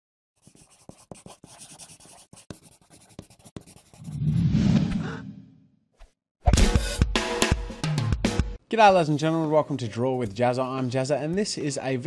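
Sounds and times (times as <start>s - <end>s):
drawing tool scratching paper: 0.4s - 4.2s.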